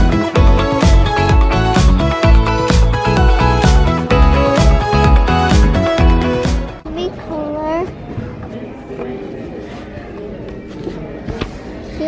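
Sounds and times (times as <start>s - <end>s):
crowd chatter in a large hall: 3.2s - 12.0s.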